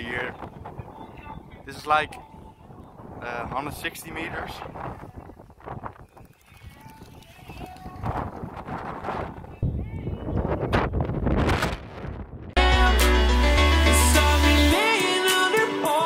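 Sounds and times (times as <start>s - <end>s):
wind rumbling on microphone: 0.0s - 12.6s
loud music with heavy bass: 12.6s - 16.0s.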